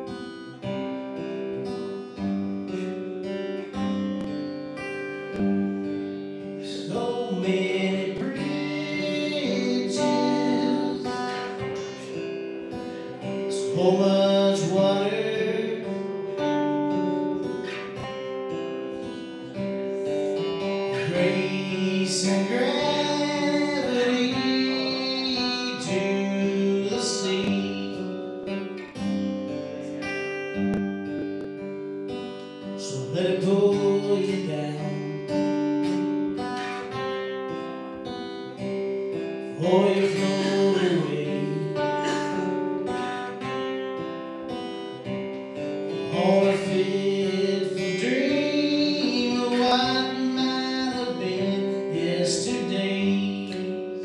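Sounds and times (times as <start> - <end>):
acoustic guitar strummed: 0.0 - 54.0
person singing: 6.5 - 16.4, 19.9 - 28.3, 32.6 - 35.5, 39.4 - 43.4, 45.9 - 54.0.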